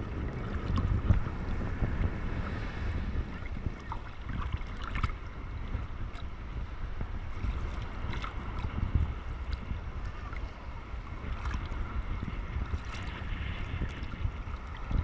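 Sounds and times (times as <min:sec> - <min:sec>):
water waves lapping: 0:00.0 - 0:15.0
wind buffeting: 0:00.0 - 0:15.0.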